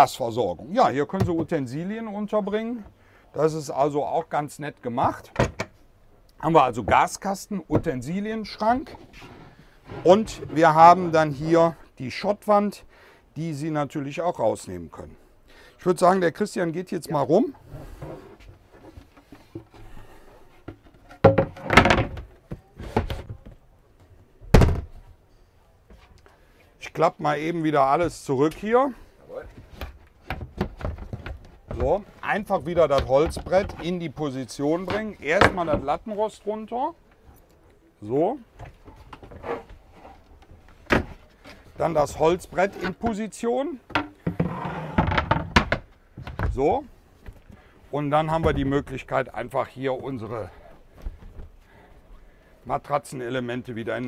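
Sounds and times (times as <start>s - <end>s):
wooden board scraping: 8.8s - 11.2s, 17.6s - 23.4s, 38.6s - 43.1s, 43.9s - 45.9s
dull thuds and knocks: 29.5s - 34.0s.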